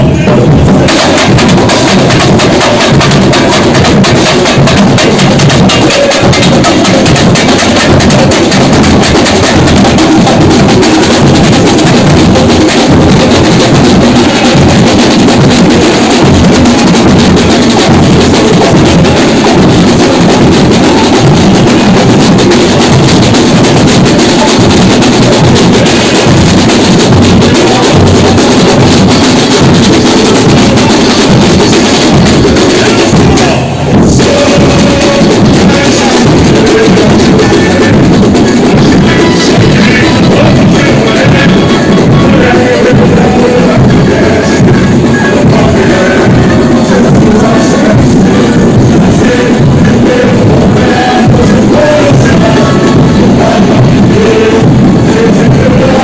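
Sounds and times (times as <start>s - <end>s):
deep bass drums: 0.0s - 56.0s
hand drums: 0.0s - 56.0s
snare drums: 0.0s - 56.0s.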